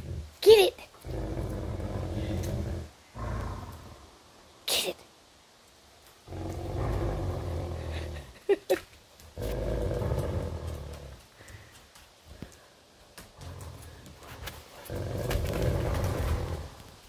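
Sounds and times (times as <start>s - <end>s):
dogs growling in play: 0.0s - 4.2s, 6.2s - 8.6s, 9.2s - 11.6s, 13.2s - 17.0s.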